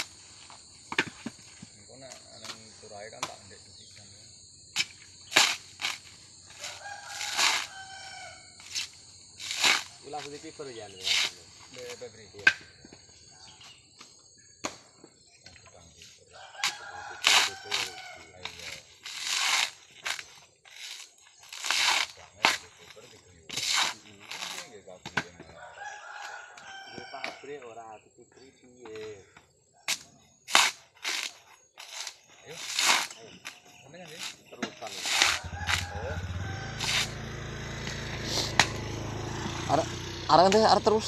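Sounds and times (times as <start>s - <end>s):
coconut husk ripping and cracking: 4.8s - 8.0s, 8.6s - 10.4s, 16.6s - 24.7s, 29.9s - 37.1s
rooster crowing: 6.5s - 8.6s, 16.3s - 18.4s, 25.5s - 27.6s, 35.2s - 40.1s.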